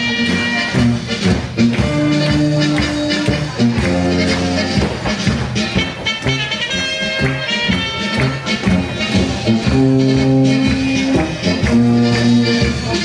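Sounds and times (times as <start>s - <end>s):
upbeat polka music: 0.0s - 13.0s.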